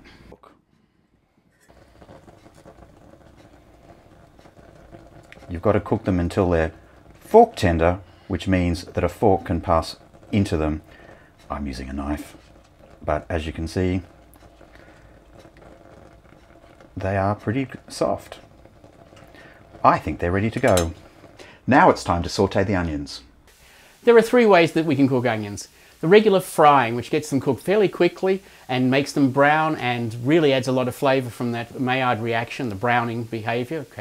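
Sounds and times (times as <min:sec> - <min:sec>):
water simmering and bubbling: 0:00.0 - 0:34.0.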